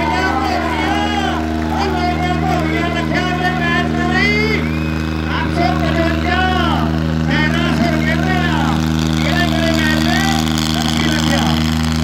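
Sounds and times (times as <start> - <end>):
tractor diesel engines running: 0.0 - 12.0.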